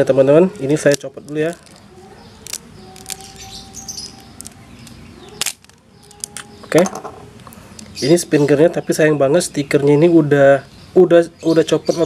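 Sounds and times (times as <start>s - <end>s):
small plastic clicks: 2.4s - 7.9s.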